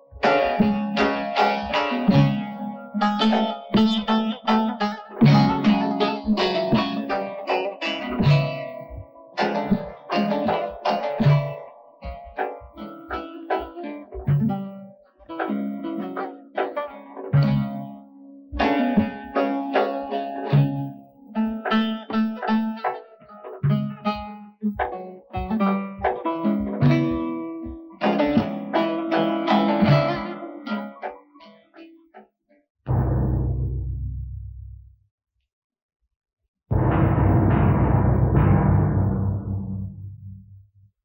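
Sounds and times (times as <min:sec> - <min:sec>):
plucked guitar notes: 0:00.0 - 0:32.2, 0:32.9 - 0:34.8
bass line: 0:32.9 - 0:35.0, 0:36.7 - 0:40.7.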